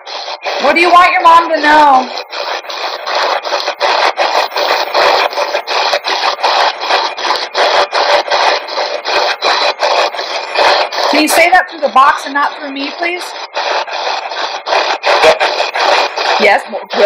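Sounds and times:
radio static bursts: 0:00.0 - 0:17.0.

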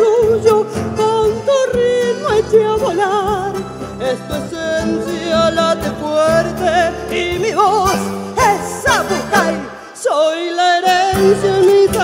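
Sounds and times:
bass guitar lines: 0:00.0 - 0:09.9, 0:11.0 - 0:12.0
accordion: 0:00.0 - 0:12.0
percussion: 0:00.0 - 0:12.0
woman singing with vibrato: 0:00.0 - 0:12.0.

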